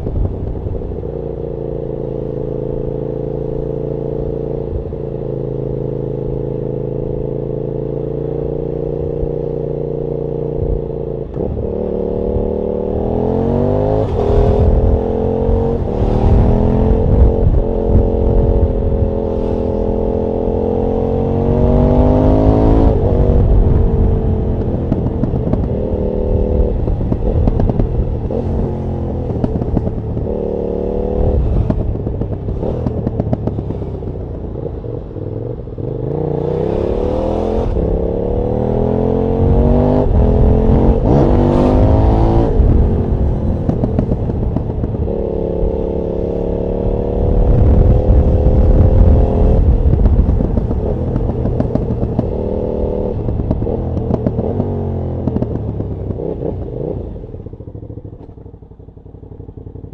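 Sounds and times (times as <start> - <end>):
wind rush: 0.0 - 1.1, 10.6 - 57.6
motorcycle engine accelerating: 0.0 - 59.9.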